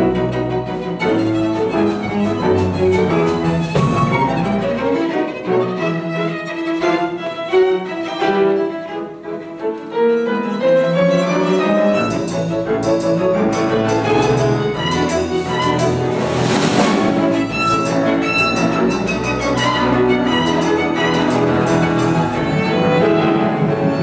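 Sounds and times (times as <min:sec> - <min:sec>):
double bass: 0:00.0 - 0:05.4, 0:10.6 - 0:24.0
piano: 0:00.0 - 0:24.0
solo violin melody: 0:00.0 - 0:24.0
drum kit: 0:03.0 - 0:04.7, 0:12.0 - 0:22.4.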